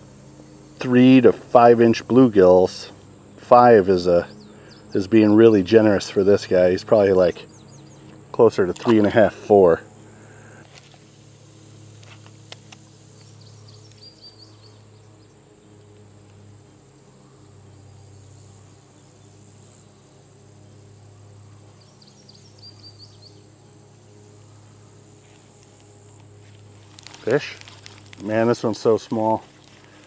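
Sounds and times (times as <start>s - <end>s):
high insect drone: 0.0s - 30.0s
low steady hum: 0.0s - 30.0s.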